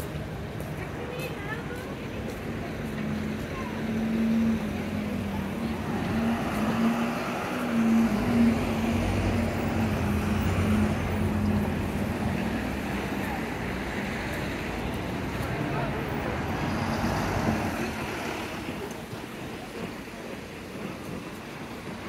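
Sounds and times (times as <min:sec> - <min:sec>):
idling vehicle engines humming: 0:00.0 - 0:22.0
street noise: 0:00.0 - 0:22.0
deeper drone: 0:02.9 - 0:14.9.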